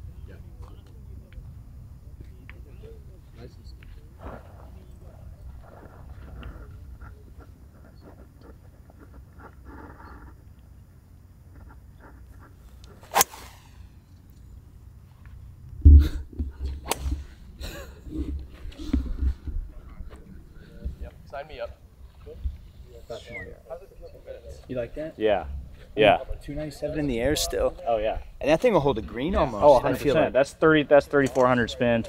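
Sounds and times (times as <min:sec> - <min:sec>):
golf club striking ball: 0:13.1 - 0:14.0.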